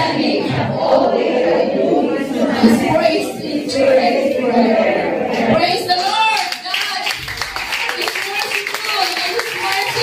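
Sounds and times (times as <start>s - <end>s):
congregation clapping: 5.9s - 10.0s
woman speaking over loudspeaker: 8.0s - 10.0s.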